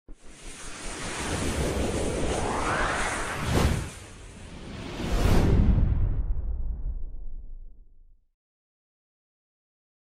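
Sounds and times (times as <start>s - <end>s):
dense rushing whoosh: 0.3s - 7.6s.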